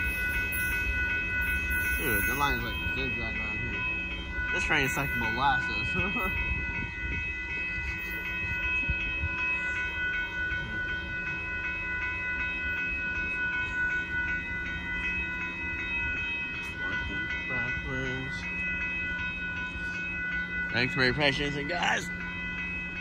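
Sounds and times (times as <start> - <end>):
railroad crossing bell ringing: 0.0 - 23.0.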